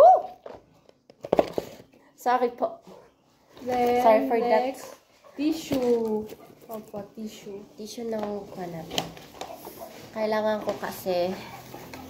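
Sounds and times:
person shouting woo: 0.0 - 0.4.

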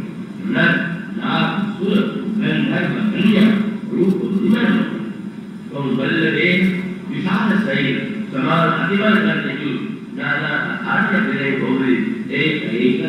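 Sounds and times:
man speaking: 0.4 - 13.0.

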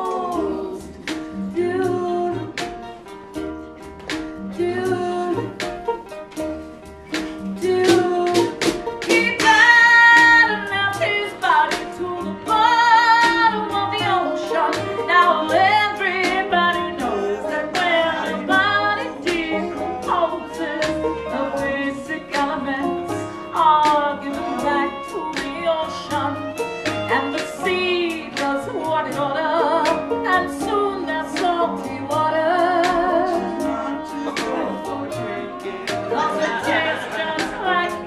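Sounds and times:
woman singing: 0.0 - 3.0, 4.4 - 5.8, 7.5 - 38.0
acoustic string band playing: 0.0 - 38.0
lap steel guitar sliding notes: 4.6 - 38.0.

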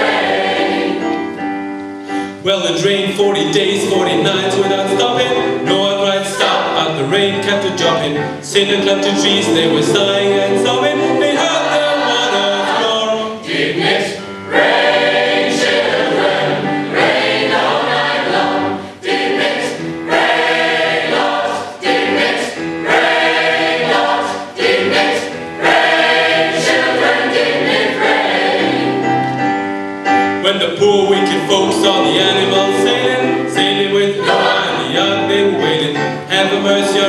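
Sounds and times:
choir singing gospel: 0.0 - 1.4, 3.3 - 29.4, 30.5 - 37.0
singers breathing: 1.9 - 2.4.

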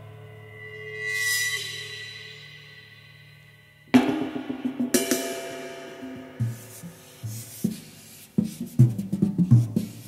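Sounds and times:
drum kit hits: 3.9 - 6.8.

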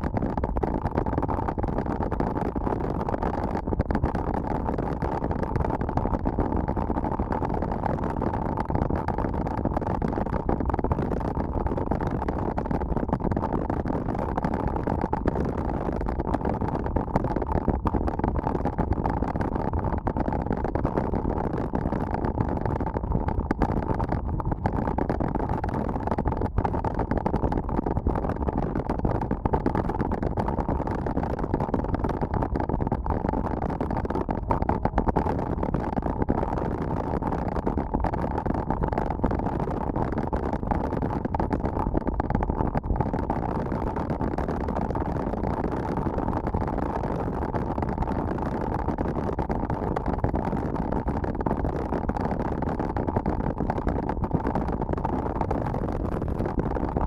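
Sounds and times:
wind noise on microphone: 0.0 - 57.0.

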